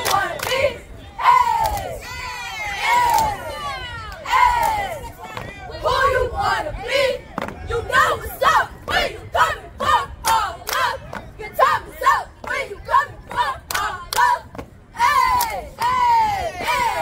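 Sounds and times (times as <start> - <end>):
cheerleaders shouting a cheer: 0.0 - 17.0.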